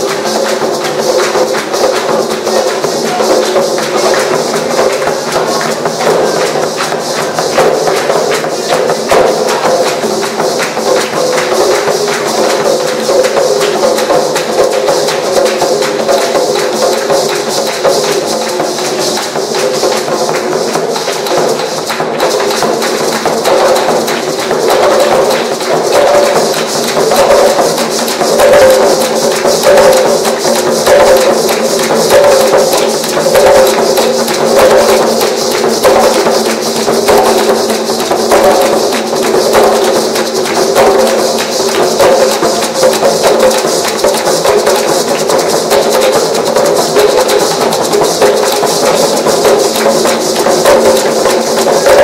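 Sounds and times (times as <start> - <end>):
hand clapping: 0.0 - 52.0
hand drums playing fast rhythm: 0.0 - 52.0
maracas: 0.0 - 52.0.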